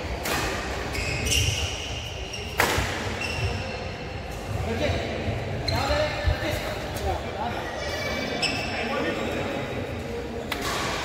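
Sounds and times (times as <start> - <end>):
shoes squeaking on court: 0.8 - 4.6, 8.3 - 9.0.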